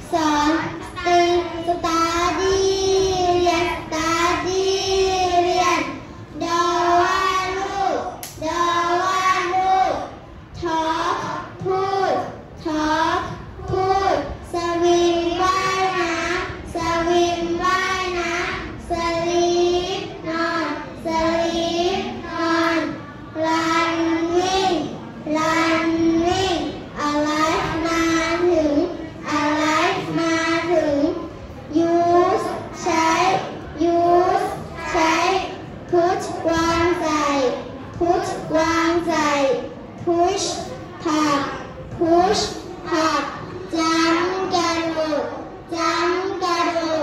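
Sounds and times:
children reciting in unison: 0.0 - 47.0.

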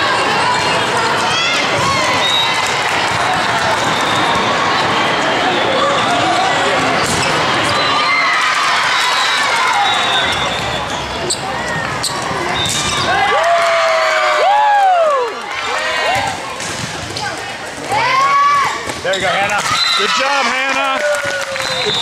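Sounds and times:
spectator chatter and calls: 0.0 - 22.0
sneakers squeaking on court: 10.0 - 13.1.

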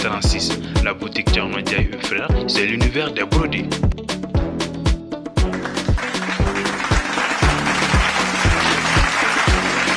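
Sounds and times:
upbeat music with bass drum: 0.0 - 9.9.

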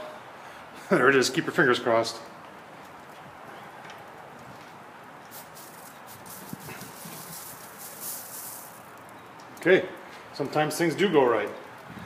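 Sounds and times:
steady low hiss: 0.0 - 12.0.

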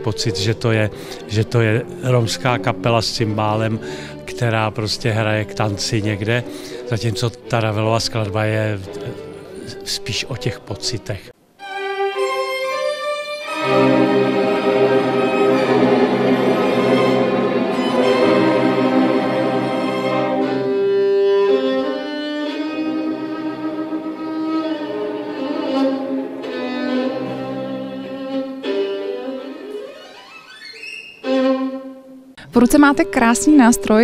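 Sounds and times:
solo violin: 0.0 - 33.9
string orchestra: 0.0 - 34.0.

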